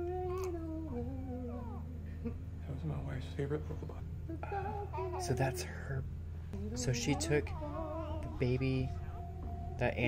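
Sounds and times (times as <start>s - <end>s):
steady low hum: 0.0s - 10.0s
baby crying: 0.3s - 1.9s, 4.3s - 5.8s, 6.6s - 9.3s.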